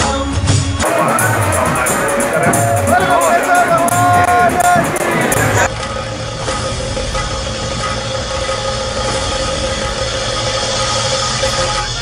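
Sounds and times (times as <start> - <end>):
street noise: 0.1 - 12.0
engine humming: 0.8 - 12.0.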